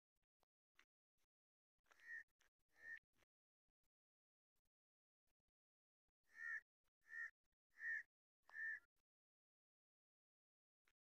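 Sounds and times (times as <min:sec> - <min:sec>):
crow cawing: 0:02.8 - 0:03.0, 0:06.3 - 0:08.9.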